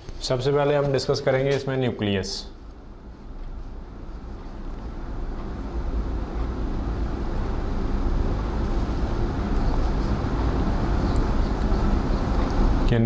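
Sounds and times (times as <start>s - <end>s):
low rumbling background noise: 0.0s - 13.0s.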